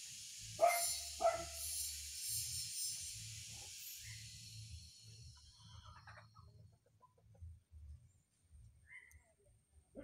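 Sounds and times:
high pulsing insect buzz: 0.5 - 5.6
dog barking: 0.6 - 1.6.

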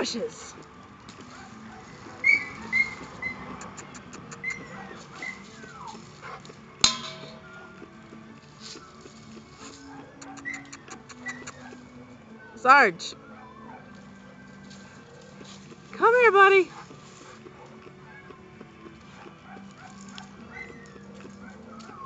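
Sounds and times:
dog whining: 1.7 - 6.4, 9.9 - 11.8, 20.5 - 22.0.

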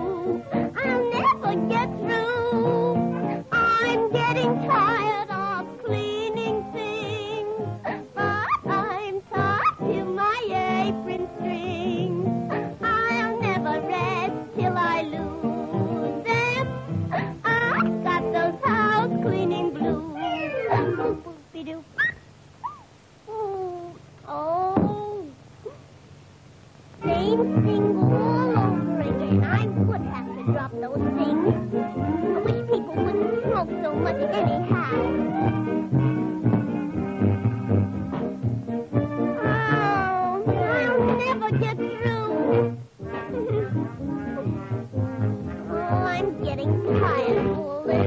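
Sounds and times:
rising squeak: 20.1 - 21.2, 22.0 - 22.9
orchestral cartoon music: 27.0 - 48.0
muted brass sliding melody: 42.4 - 46.2.

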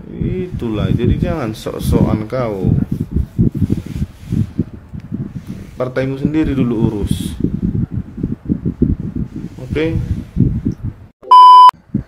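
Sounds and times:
loud electronic beep: 11.2 - 11.7.

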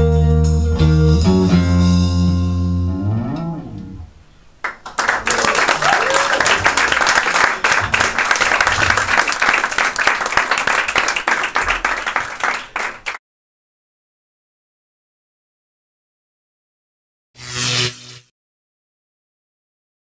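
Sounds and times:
audience clapping: 4.6 - 13.2.

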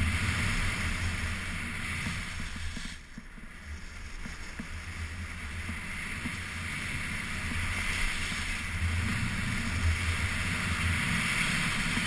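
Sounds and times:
skis sliding on snow: 0.0 - 12.0
wind on microphone: 0.0 - 12.0.

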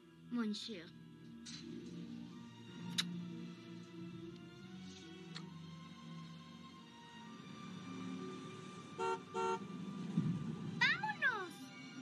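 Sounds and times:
soft background music: 0.0 - 12.0
car horn honking: 9.0 - 9.7.

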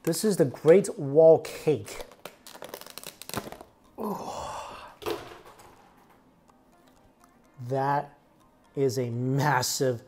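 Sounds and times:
plastic lid crinkling: 1.9 - 3.8.

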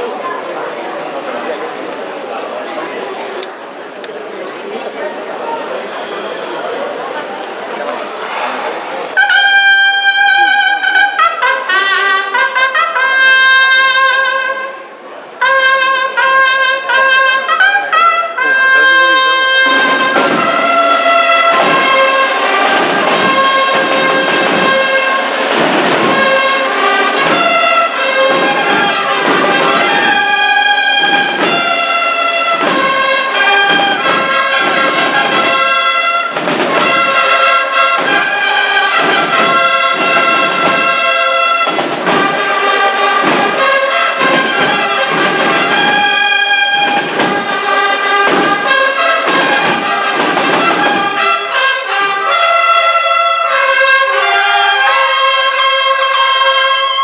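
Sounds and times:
trumpets and trombones: 5.6 - 57.0
drums: 19.1 - 51.8.

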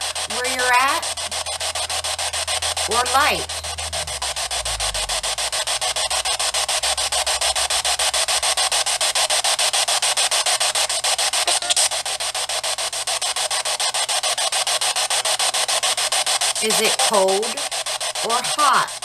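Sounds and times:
pulsing radio static: 0.0 - 19.0.

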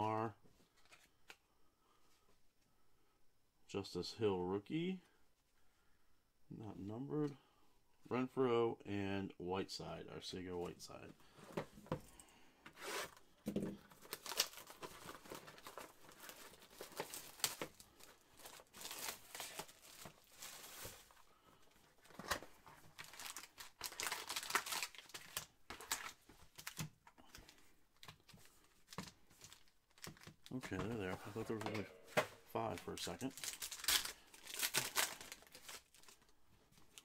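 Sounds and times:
foil card packs rustling: 12.7 - 37.0
shrink-wrap tearing and crinkling: 14.0 - 21.2, 22.0 - 26.9, 32.6 - 36.3.

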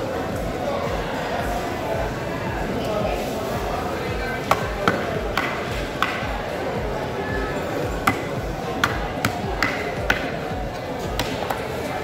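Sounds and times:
background music: 0.0 - 12.0
knife chopping on wooden block: 4.5 - 6.2, 8.1 - 10.4.

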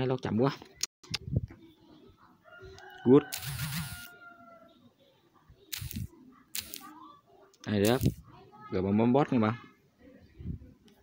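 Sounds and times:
hiss bursts: 3.4 - 4.1, 5.7 - 6.8.

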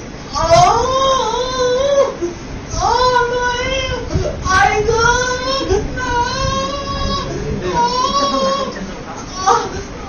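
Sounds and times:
young child crying: 0.3 - 9.9.

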